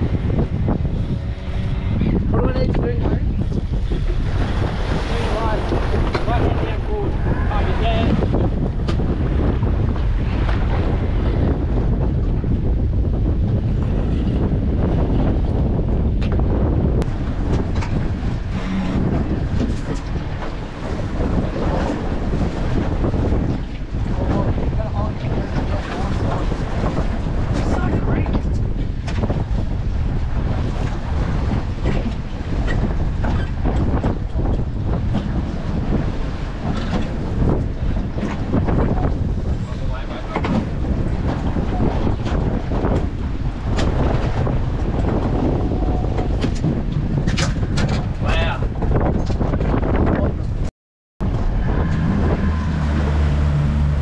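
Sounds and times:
waves slapping boat hull: 0:00.0 - 0:54.0
wind buffeting microphone: 0:00.0 - 0:54.0.

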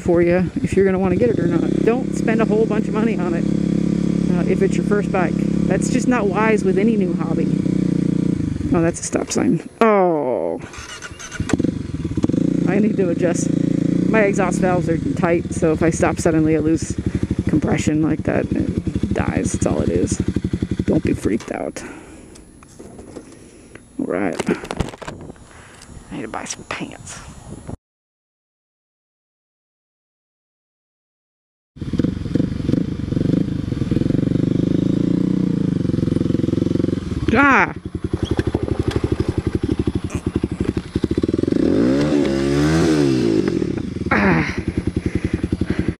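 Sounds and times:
motorcycle engine chugging and revving: 0:00.0 - 0:27.2, 0:31.8 - 0:46.0.

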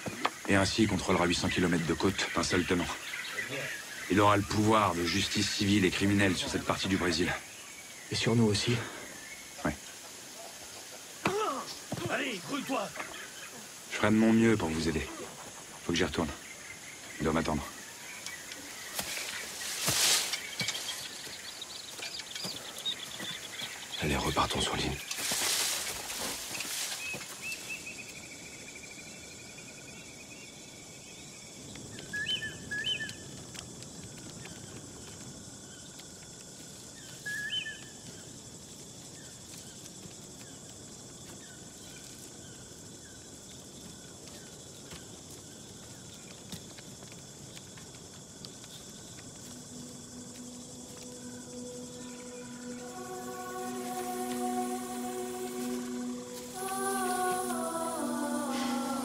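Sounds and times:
bird chirps: 0:14.4 - 0:25.2, 0:31.8 - 0:33.3, 0:37.0 - 0:38.0
sustained music notes: 0:49.3 - 0:59.0.

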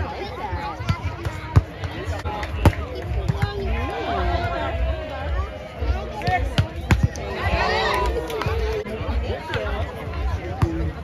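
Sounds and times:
spectators chatting: 0:00.0 - 0:11.0.

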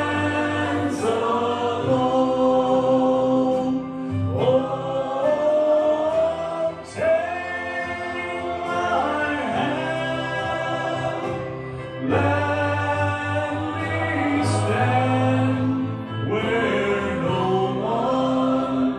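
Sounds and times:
group voices singing: 0:00.0 - 0:18.9
man singing a hymn into microphone: 0:00.0 - 0:18.9.

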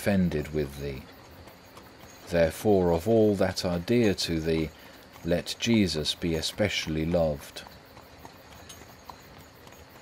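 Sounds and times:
horse hooves clip-clop: 0:00.0 - 0:10.0.

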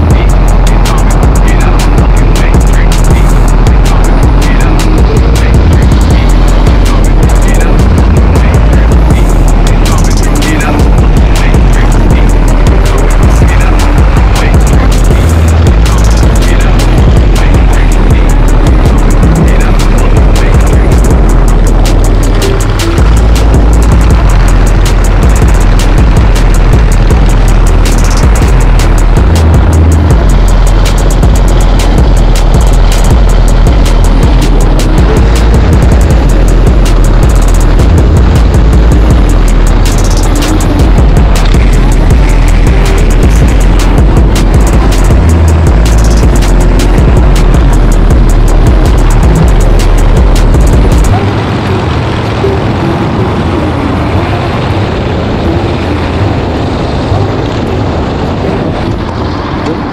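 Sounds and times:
background music: 0:00.0 - 0:55.4
motorcycle engine running: 0:00.0 - 0:59.9.

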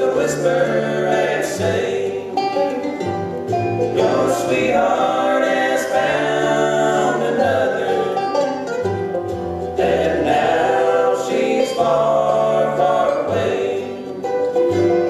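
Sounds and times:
acoustic guitar: 0:00.0 - 0:15.0
banjo: 0:00.0 - 0:15.0
mandolin: 0:00.0 - 0:15.0
upright bass: 0:00.0 - 0:15.0
vocal harmony singing: 0:00.0 - 0:15.0.

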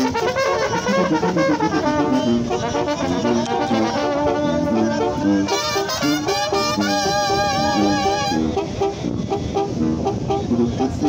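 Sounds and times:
punchy trombone notes: 0:00.0 - 0:11.0
wavering horn note: 0:00.0 - 0:11.0.

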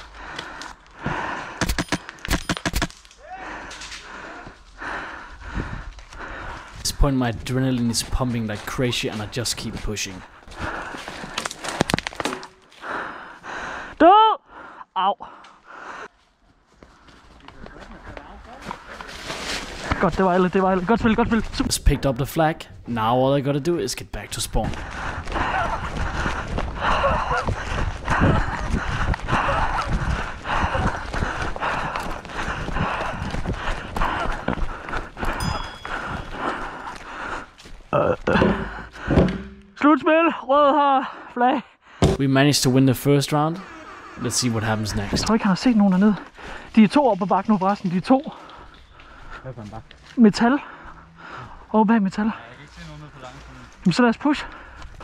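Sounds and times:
person breathing hard: 0:00.0 - 0:02.2, 0:03.2 - 0:06.8, 0:10.5 - 0:11.9, 0:12.7 - 0:16.2, 0:24.7 - 0:37.8, 0:38.4 - 0:39.6, 0:46.2 - 0:46.8, 0:50.6 - 0:51.7, 0:54.5 - 0:55.0
running footsteps on dirt path: 0:00.0 - 0:02.2, 0:03.5 - 0:13.7, 0:15.7 - 0:22.1, 0:24.2 - 0:39.6, 0:44.2 - 0:51.7, 0:52.3 - 0:55.0
sharp clicks: 0:01.6 - 0:03.2.

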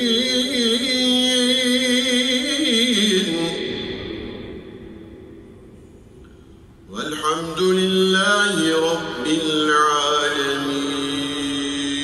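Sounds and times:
man chanting melodically: 0:00.0 - 0:05.0, 0:06.9 - 0:12.0.

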